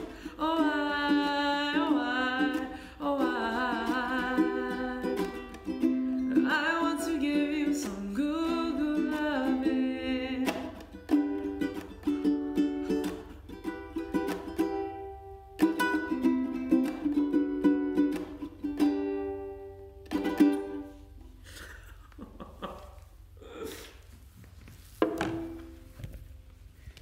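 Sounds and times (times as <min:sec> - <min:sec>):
ukulele strumming chords: 0:00.0 - 0:21.4, 0:25.2 - 0:26.0.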